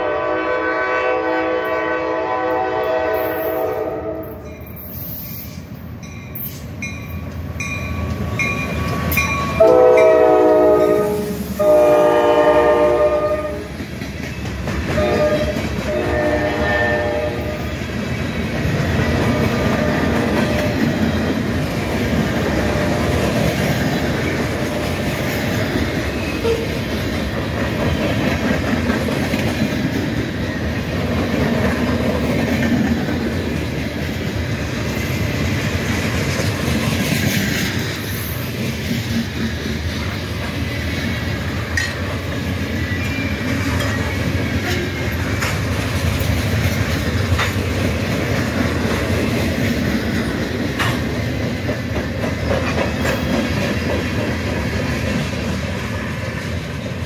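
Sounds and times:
locomotive air horn blasts: 0.0 - 4.4, 9.6 - 13.7, 15.0 - 17.7, 26.4 - 26.8.

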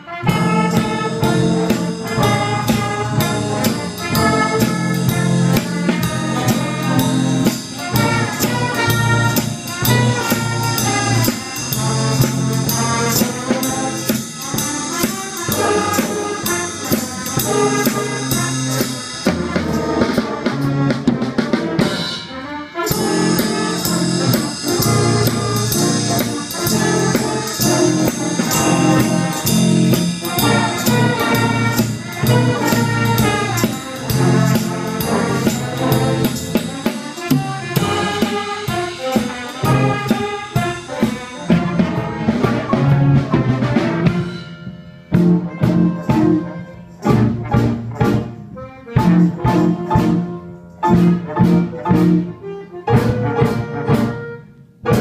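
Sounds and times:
jazz band playing: 0.0 - 55.0.

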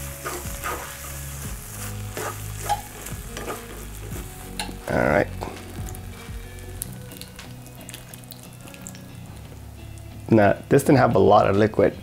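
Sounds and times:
sauce sizzling in a frying pan: 0.0 - 11.5
beans and liquid pouring: 5.9 - 9.4.

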